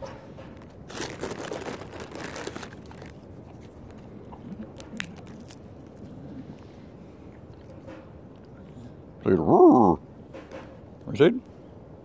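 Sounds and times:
hand digging through peanuts: 0.6s - 4.0s
plastic bag crinkling: 0.6s - 4.0s.

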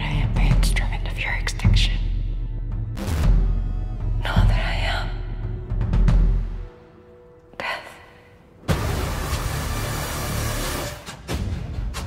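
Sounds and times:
person whispering: 0.0s - 2.0s, 4.2s - 5.3s, 7.5s - 8.4s
low music bed: 0.0s - 12.0s.

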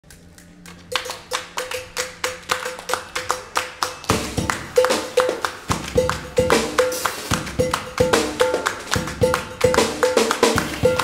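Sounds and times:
people clapping in rhythm: 0.0s - 11.0s.

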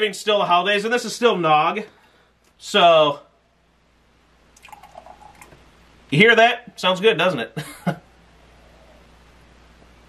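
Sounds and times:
liquid pouring into a mug: 4.6s - 5.6s.

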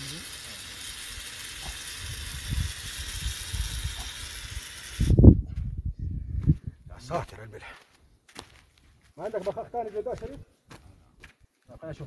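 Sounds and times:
aerosol spray hissing: 0.0s - 5.2s.

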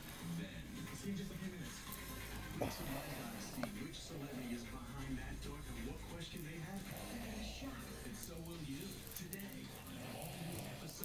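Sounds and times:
muffled television speech: 0.0s - 11.0s
television music: 0.0s - 11.0s.

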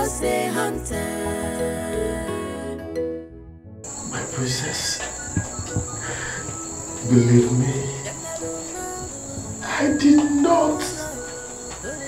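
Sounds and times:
soft background music: 0.0s - 12.0s
crickets chirring: 3.9s - 12.0s.

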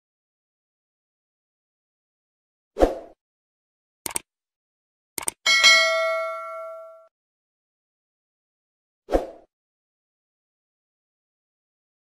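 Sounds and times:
quick clicks: 4.0s - 4.3s, 5.2s - 5.4s
bell ding: 5.5s - 7.1s.

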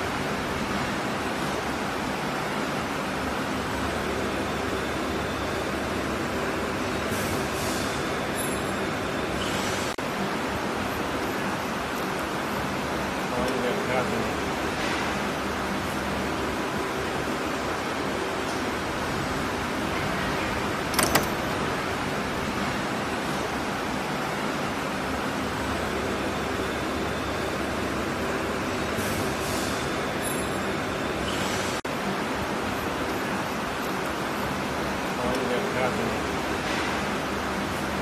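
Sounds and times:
factory machinery noise: 0.0s - 38.0s.

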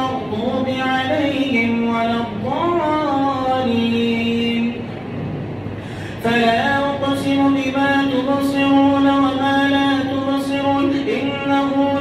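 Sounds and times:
man reciting: 0.0s - 4.8s, 6.2s - 12.0s
reverberant room noise: 0.0s - 12.0s.

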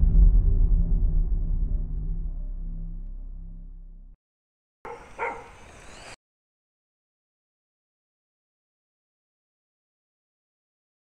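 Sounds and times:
outdoor ambience: 0.0s - 4.2s, 4.9s - 6.2s
outro music: 0.0s - 4.2s.

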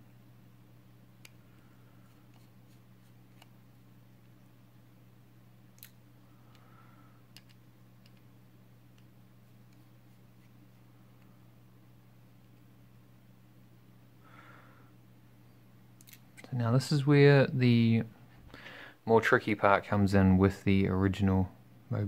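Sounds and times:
low hum: 0.0s - 22.0s.

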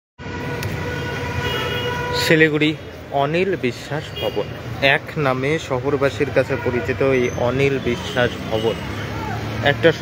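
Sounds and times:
road traffic rumble: 0.2s - 10.0s
vehicle horn held steady: 0.3s - 2.4s.

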